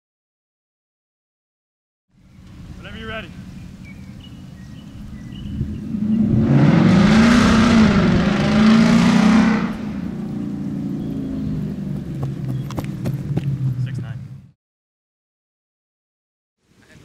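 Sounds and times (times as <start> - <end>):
steady engine hum: 2.1 - 14.6
vehicle driving past: 2.2 - 14.6.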